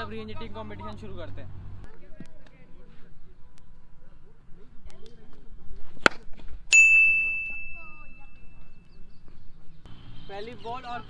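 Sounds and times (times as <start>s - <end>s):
cricket bat striking ball: 5.9s - 6.5s
bell-like ding: 6.7s - 8.6s.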